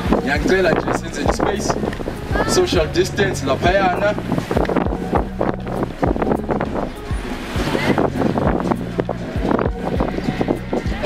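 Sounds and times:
crowd chatter: 0:00.0 - 0:11.0
wind buffeting microphone: 0:00.0 - 0:11.0.

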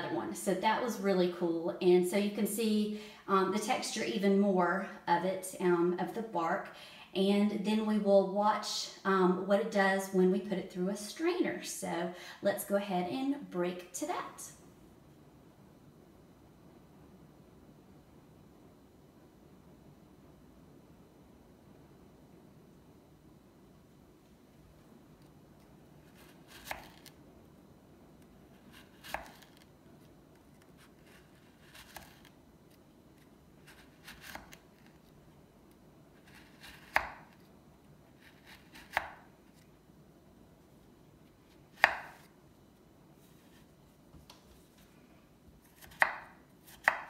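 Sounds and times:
faint low hum: 0:00.0 - 0:47.0
knife chopping onto wooden board: 0:29.0 - 0:29.4, 0:36.9 - 0:37.2, 0:38.8 - 0:39.2, 0:41.8 - 0:42.3, 0:45.8 - 0:47.0.

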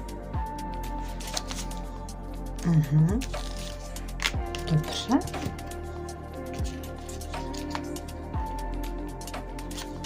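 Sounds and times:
soft background music: 0:00.0 - 0:10.0
cards clicking and rustling: 0:01.0 - 0:02.0, 0:03.2 - 0:05.6, 0:06.5 - 0:08.0, 0:09.6 - 0:10.0.

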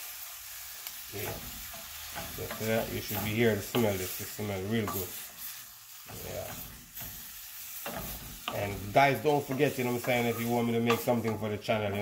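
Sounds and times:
vegetables sizzling in butter: 0:00.0 - 0:12.0
wooden spoon stirring in pan: 0:00.0 - 0:12.0.

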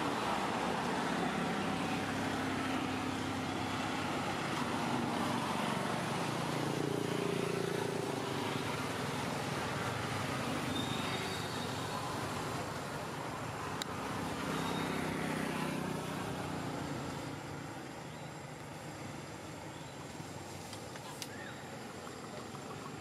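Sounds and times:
faint engine tones: 0:00.0 - 0:23.0
road traffic: 0:00.0 - 0:23.0.

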